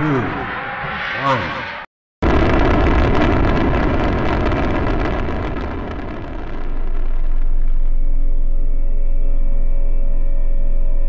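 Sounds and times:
rocket liftoff rumble: 2.2s - 9.7s
ambient music with held tones: 8.0s - 11.0s.

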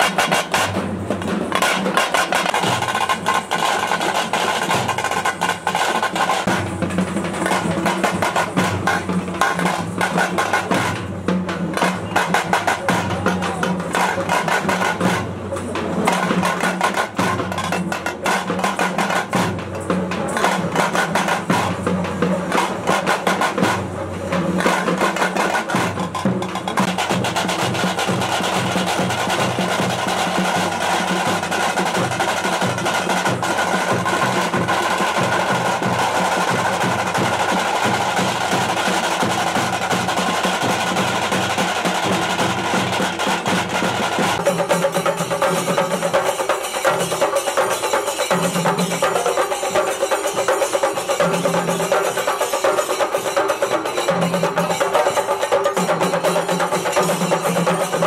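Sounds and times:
barrel drums in fast rhythm: 0.0s - 58.0s.

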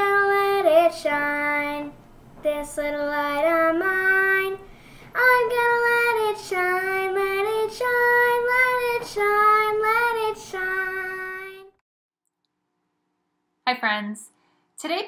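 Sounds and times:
child singing: 0.0s - 11.8s.

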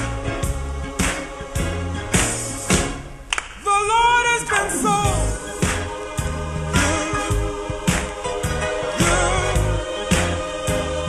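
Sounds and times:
gospel choir singing: 0.0s - 11.0s
steady beat: 4.3s - 11.0s.

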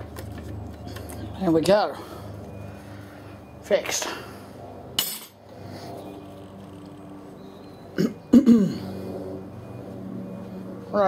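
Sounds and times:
faint steady hum: 0.0s - 11.0s
man coughing: 8.0s - 8.9s.

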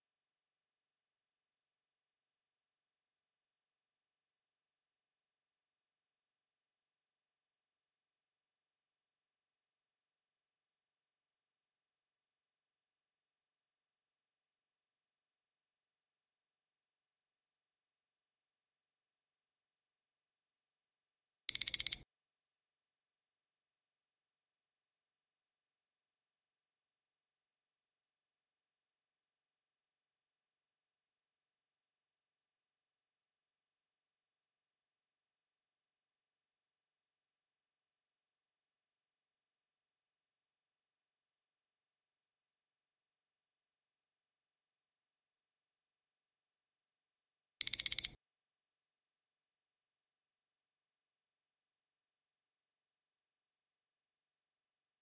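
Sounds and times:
timer alarm high beeps: 21.5s - 22.0s, 47.6s - 48.1s.

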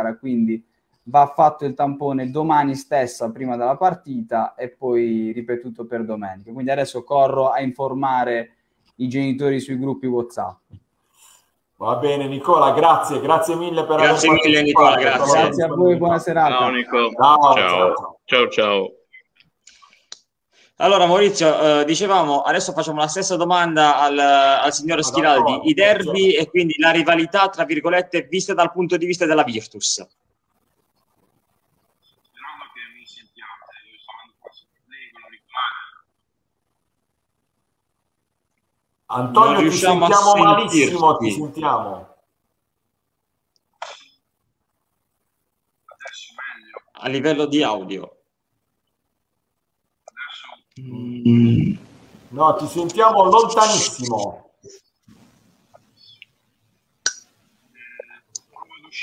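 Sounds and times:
man talking: 0.0s - 10.6s, 11.8s - 19.1s, 20.8s - 30.1s, 39.1s - 42.1s, 50.1s - 54.5s
person speaking: 11.8s - 19.4s, 21.0s - 30.1s, 39.1s - 42.1s, 50.1s - 54.8s.

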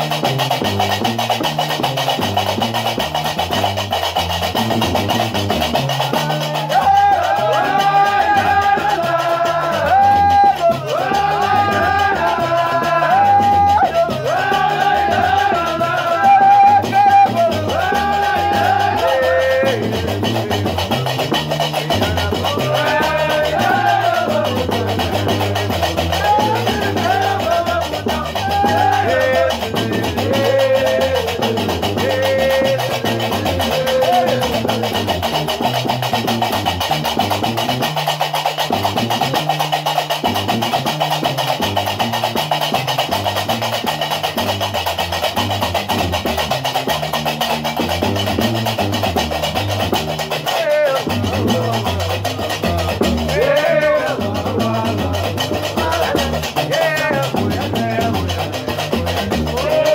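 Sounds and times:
bass lute playing: 0.0s - 59.9s.

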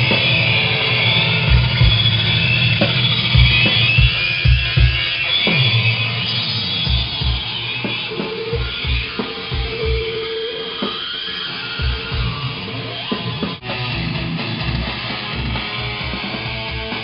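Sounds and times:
distorted guitar: 0.0s - 17.0s.

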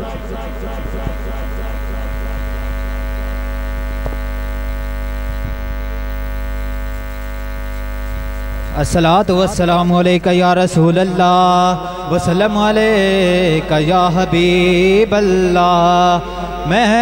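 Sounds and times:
loudspeaker buzzing drone: 0.0s - 17.0s
low mains hum: 0.0s - 17.0s.

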